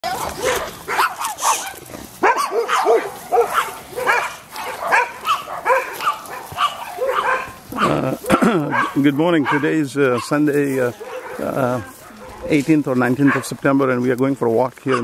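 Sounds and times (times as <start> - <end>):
dogs barking: 0.0 - 13.9, 14.8 - 15.0.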